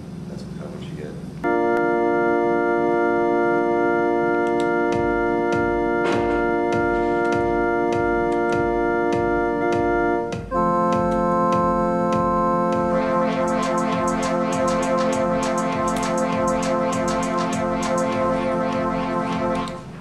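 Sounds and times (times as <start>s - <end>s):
organ-like synthesizer chord: 1.4s - 20.0s
electronic clicks: 4.4s - 4.8s, 10.8s - 19.9s
electronic drum beat: 4.6s - 20.0s.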